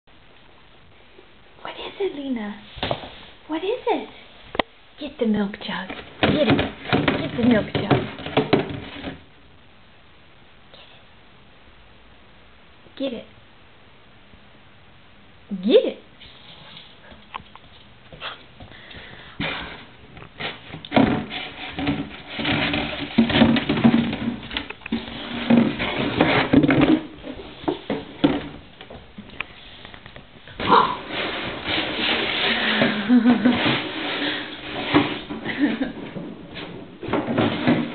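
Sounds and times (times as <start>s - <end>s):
plastic jug knocking on wood floor: 6.0s - 9.2s, 20.7s - 29.0s.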